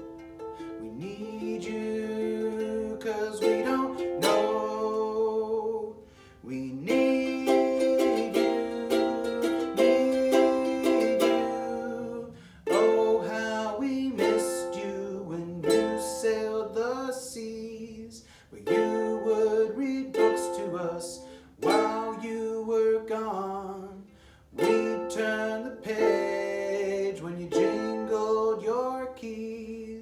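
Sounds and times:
man singing: 0.0s - 30.0s
strummed ukulele: 0.0s - 30.0s.

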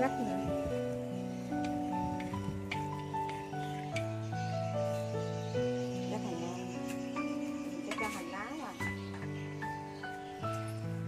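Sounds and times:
slow melody over sustained chords: 0.0s - 11.0s.

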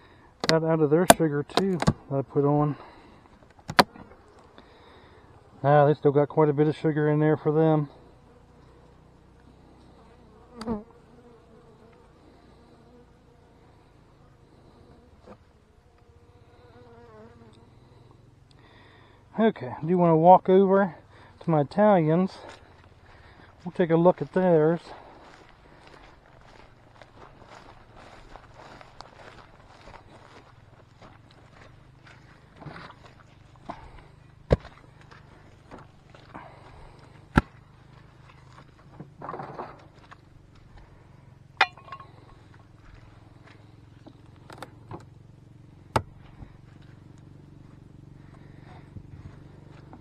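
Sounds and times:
footsteps crunching dry grass: 21.9s - 39.1s, 41.6s - 44.2s.

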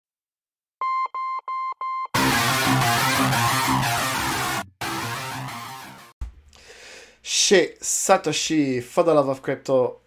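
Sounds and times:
short electronic beeps: 0.8s - 2.2s.

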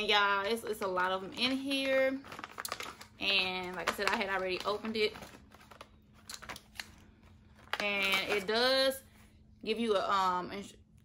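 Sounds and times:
pouch crinkling and rustling: 0.9s - 8.6s.

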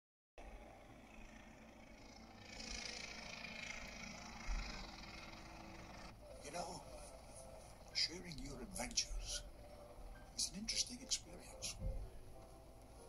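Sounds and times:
airship engines droning: 0.4s - 13.0s.

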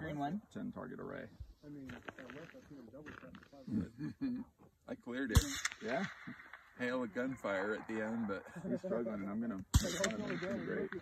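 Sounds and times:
men talking quietly: 0.0s - 11.0s.

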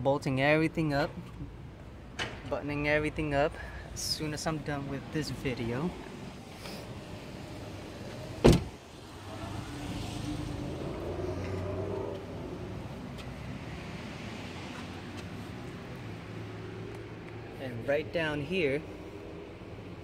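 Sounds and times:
vehicle engine hum: 0.7s - 20.0s.

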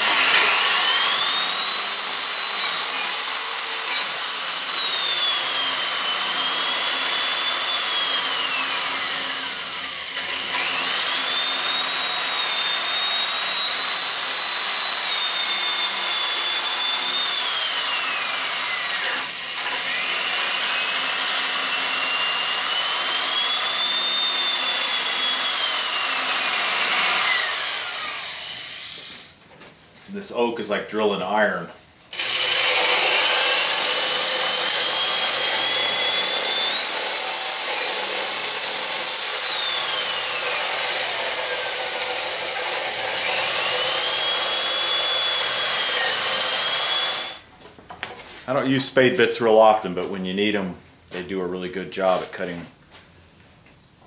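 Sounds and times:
electric drill boring wood: 0.0s - 29.4s, 32.1s - 47.5s.

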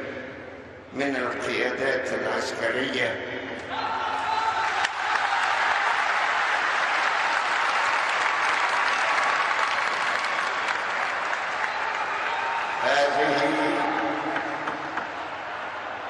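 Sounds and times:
large audience applauding: 4.7s - 16.0s.

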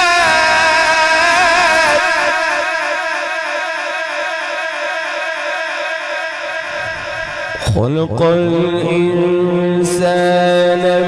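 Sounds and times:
man reciting through a microphone: 0.0s - 11.0s.

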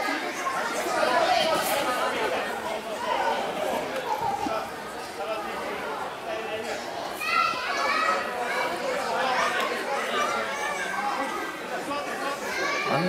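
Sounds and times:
spectators chattering: 0.0s - 13.0s.

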